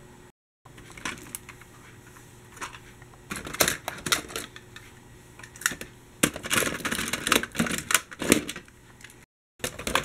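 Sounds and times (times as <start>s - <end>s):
toy vehicles clattering in box: 9.6s - 10.0s.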